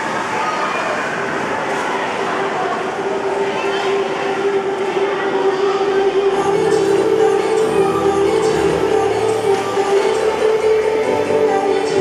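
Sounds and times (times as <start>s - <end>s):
hubbub of large room: 0.0s - 12.0s.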